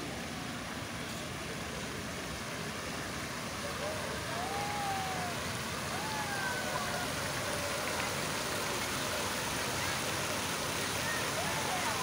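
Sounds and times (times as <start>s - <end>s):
faint crowd voices: 0.0s - 12.0s
fountain jets splashing into pool: 0.0s - 12.0s.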